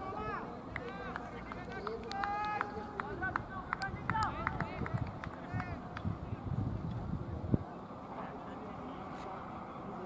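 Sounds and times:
sharp claps: 0.7s - 6.1s.

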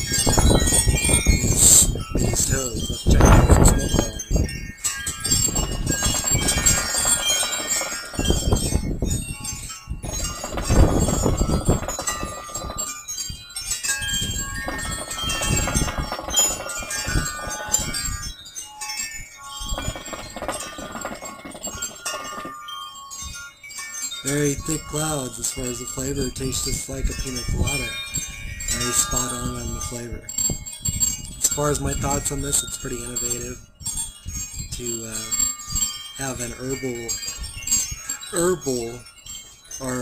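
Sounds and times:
high chime-like ringing: 0.0s - 40.0s.

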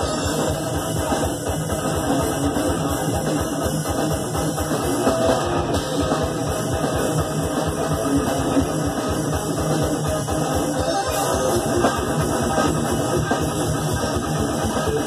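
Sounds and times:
distorted electric guitar: 0.0s - 15.0s
fast drumming on drum kit: 0.0s - 15.0s.

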